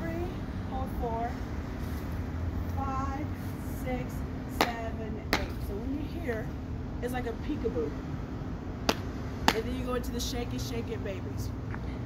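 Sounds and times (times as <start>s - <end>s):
steady low hum: 0.0s - 12.0s
sharp smacks: 8.9s - 9.6s.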